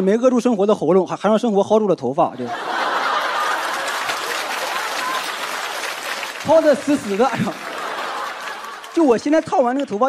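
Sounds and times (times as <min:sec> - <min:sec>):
audience laughing: 0:02.4 - 0:09.9
audience clapping: 0:02.5 - 0:10.0.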